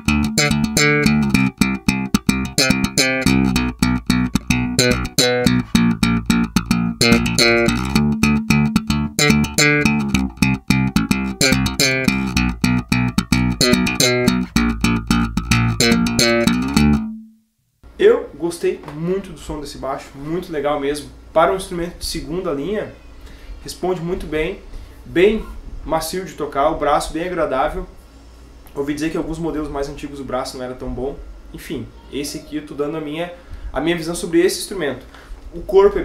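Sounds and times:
slap electric bass: 0:00.0 - 0:17.3.

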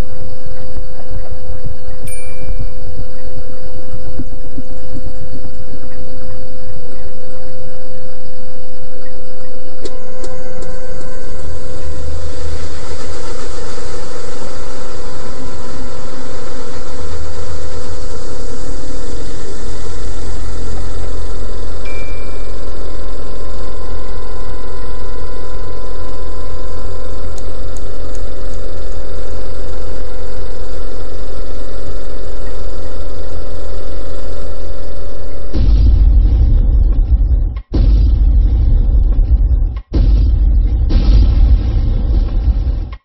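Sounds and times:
loud low rumble with hum: 0:00.0 - 0:43.0
short bell-like ding: 0:02.1 - 0:02.8
short high beep: 0:02.1 - 0:06.0, 0:21.9 - 0:23.4.

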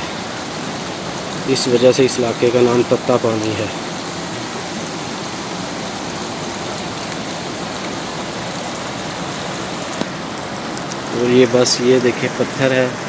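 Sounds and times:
water rushing over rocks: 0:00.0 - 0:13.0.

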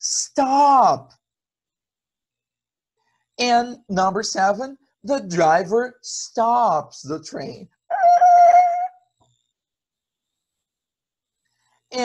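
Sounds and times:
high steady tone: 0:07.9 - 0:08.9.

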